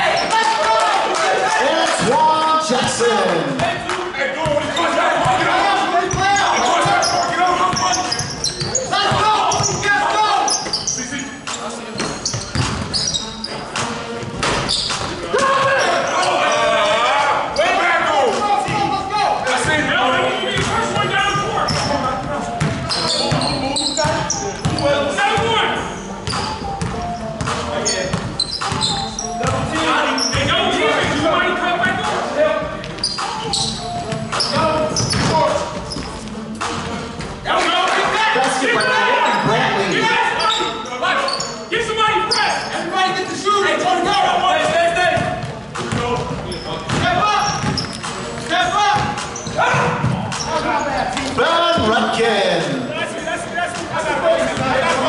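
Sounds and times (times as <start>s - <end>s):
players' voices: 0.0s - 55.0s.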